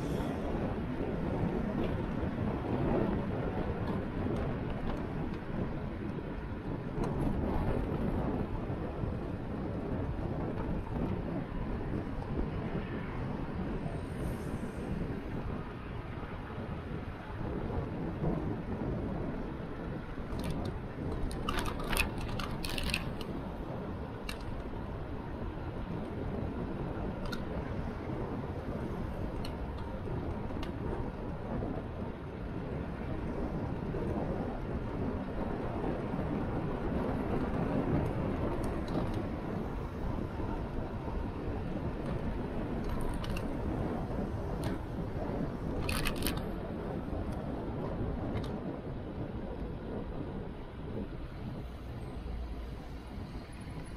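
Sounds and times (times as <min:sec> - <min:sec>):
wind rumbling on microphone: 0:00.0 - 0:53.9
sharp clicks and rattles: 0:20.3 - 0:23.3, 0:42.8 - 0:43.5, 0:45.8 - 0:46.5.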